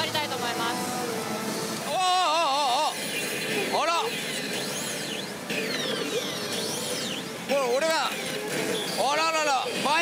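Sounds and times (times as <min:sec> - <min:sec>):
electronic sweeping high tones: 0:00.0 - 0:10.0
pachinko parlour din: 0:00.0 - 0:10.0
warbling voice-like call: 0:01.9 - 0:07.8.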